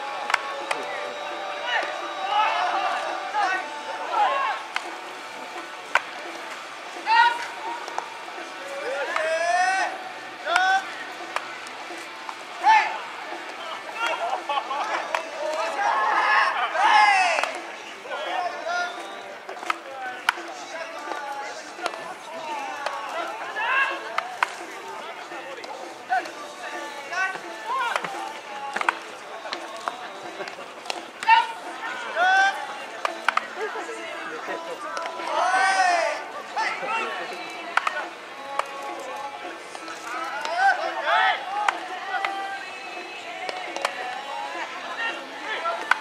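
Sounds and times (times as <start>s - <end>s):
players shouting calls: 0.0s - 46.0s.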